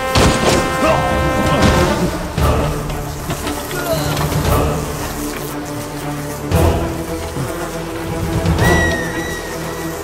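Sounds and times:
film score with sustained notes: 0:00.0 - 0:10.0.

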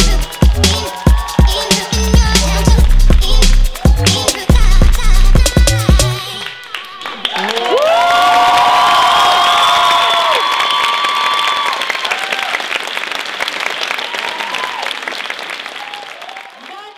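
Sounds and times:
audience applauding and cheering: 0:00.0 - 0:16.9
long held shouts: 0:06.6 - 0:12.6.

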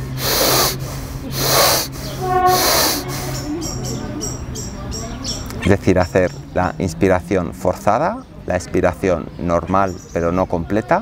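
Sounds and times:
man breathing hard: 0:00.0 - 0:03.5.

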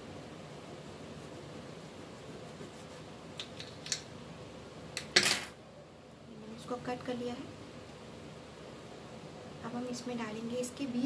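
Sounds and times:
faint steady hiss: 0:00.0 - 0:11.0
small objects clicking on tabletop: 0:03.4 - 0:04.1.

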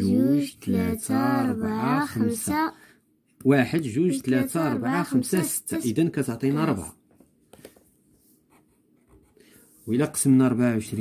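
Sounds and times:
man talking: 0:03.4 - 0:07.0, 0:09.9 - 0:11.0
marker pen scratching on paper: 0:08.2 - 0:09.4.

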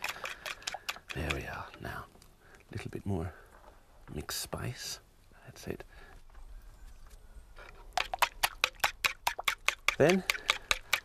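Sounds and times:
fork beating eggs in a bowl: 0:00.0 - 0:01.4, 0:08.0 - 0:11.0.

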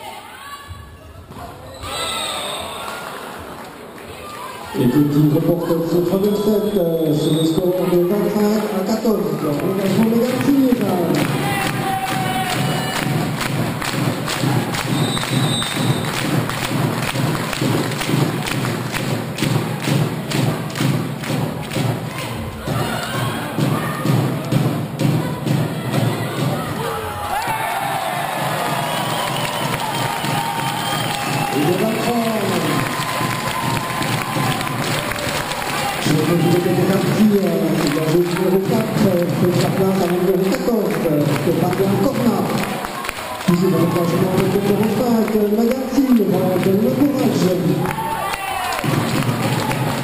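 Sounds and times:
crowd cheering: 0:00.0 - 0:50.0
crowd beating rhythmic thumps: 0:02.4 - 0:50.0.

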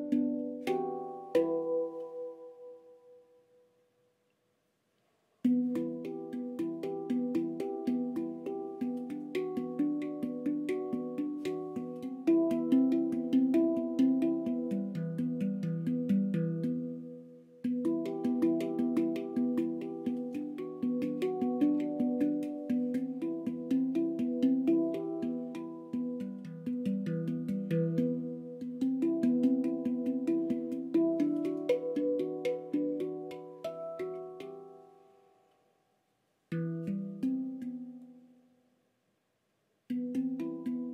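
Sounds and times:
handpan played with fingertips: 0:00.0 - 0:03.2, 0:05.4 - 0:35.1, 0:36.5 - 0:38.3, 0:39.9 - 0:40.9.

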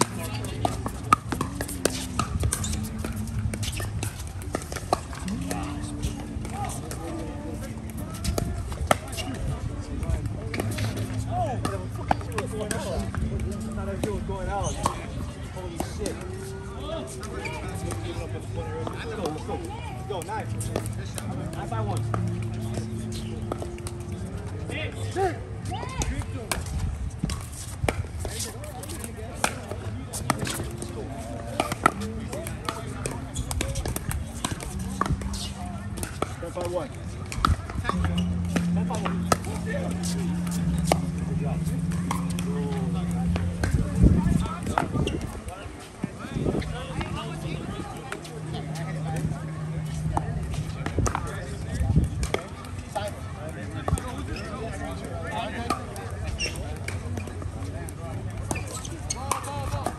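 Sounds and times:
background voices: 0:00.0 - 0:19.0, 0:29.9 - 0:52.1.

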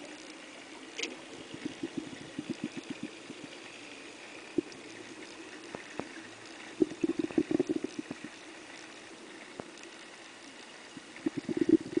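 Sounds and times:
underwater hiss: 0:00.8 - 0:12.0
regulator bubbles burbling: 0:01.0 - 0:12.0.

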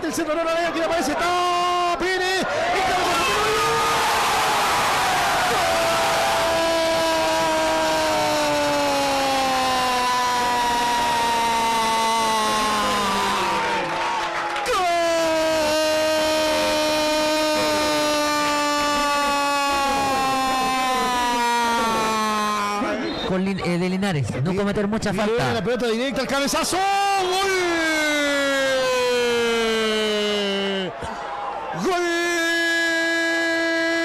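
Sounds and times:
commentator shouting long goal cry: 0:05.8 - 0:13.9, 0:14.6 - 0:23.1.

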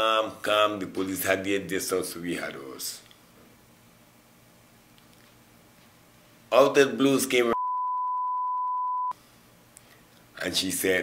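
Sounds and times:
faint room noise: 0:00.0 - 0:07.6
steady beep tone: 0:07.6 - 0:09.1.

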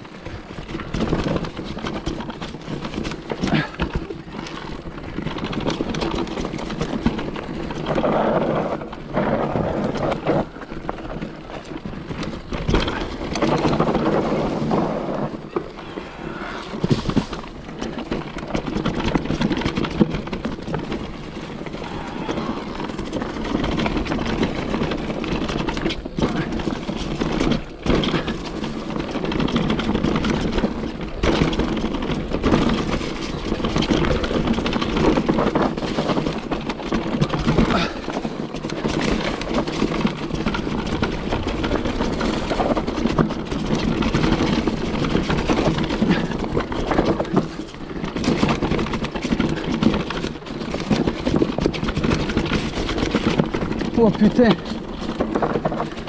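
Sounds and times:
bike knocking and rattling: 0:00.0 - 0:56.0
bike tyres on dirt: 0:00.0 - 0:56.0.

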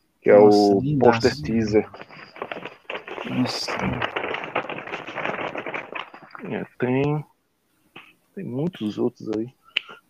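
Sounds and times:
paper poster rustling: 0:00.6 - 0:07.2.

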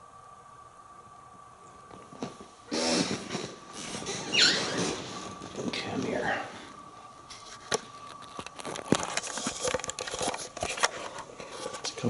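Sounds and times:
loud rustling and crackling: 0:02.2 - 0:12.0.

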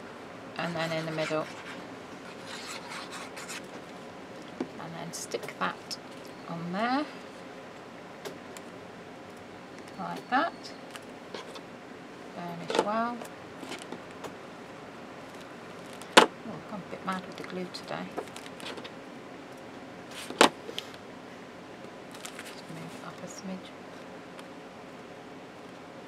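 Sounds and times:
glue nozzle scratching on paper: 0:00.7 - 0:03.6.

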